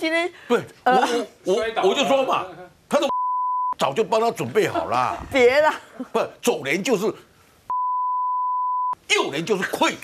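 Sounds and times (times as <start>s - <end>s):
censor bleep tone: 3.1s - 3.8s, 7.7s - 9.0s.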